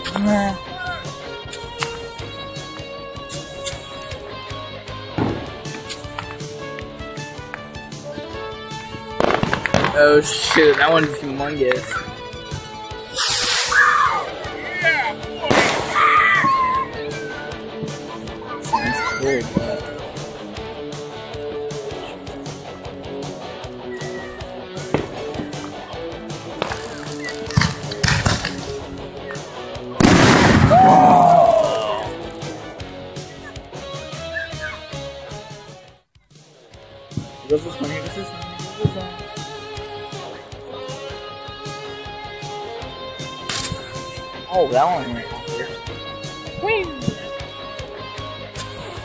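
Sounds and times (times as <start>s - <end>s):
fireworks bangs and crackling: 0.0s - 21.0s, 24.0s - 32.8s, 37.0s - 41.8s.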